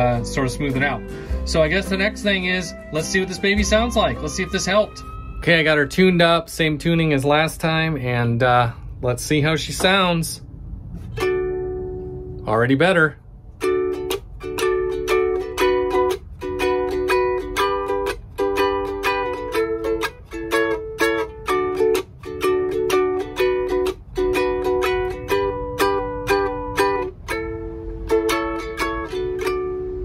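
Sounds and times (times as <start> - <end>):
ukulele strumming: 0.0 - 7.8, 9.7 - 12.5, 13.4 - 30.0.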